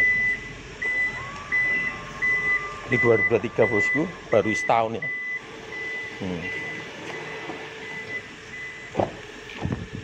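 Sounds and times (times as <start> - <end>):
high-pitched warning beeps: 0.0 - 9.0
low steady hum: 0.0 - 10.0
tailgate thud shutting: 8.9 - 9.8.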